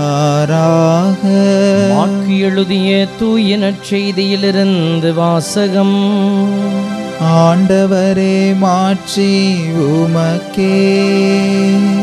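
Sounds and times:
priest chanting a prayer: 0.0 - 3.4.

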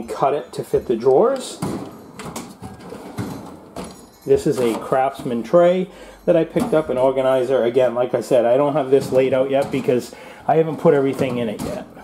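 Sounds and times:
metal drawers sliding on runners: 1.4 - 5.6.

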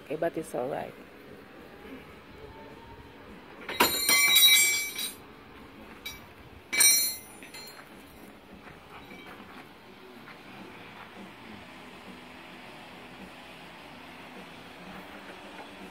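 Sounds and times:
high metallic clinking: 3.6 - 5.2, 6.0 - 8.0.

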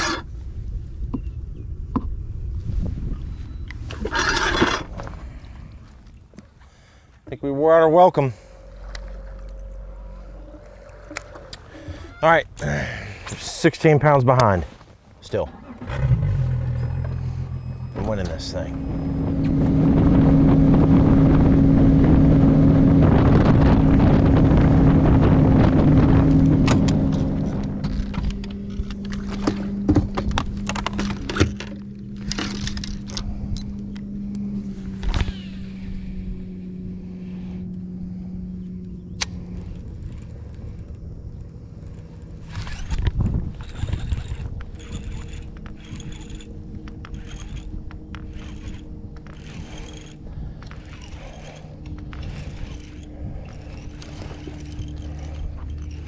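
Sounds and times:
rushing wind: 0.0 - 6.6, 15.6 - 56.0
hull noise: 0.0 - 56.0
outboard motor running: 3.9 - 13.5, 15.4 - 56.0
fishing reel clicks: 41.8 - 56.0.

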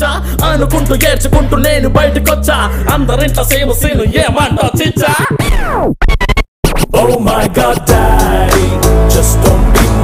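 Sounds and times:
singing over a beat: 0.0 - 5.5, 6.8 - 10.0.

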